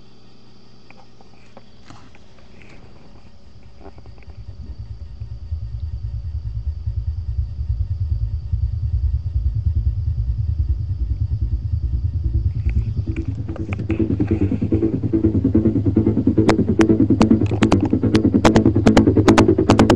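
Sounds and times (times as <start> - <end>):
deep pulsing bass beat: 3.6 - 19.9.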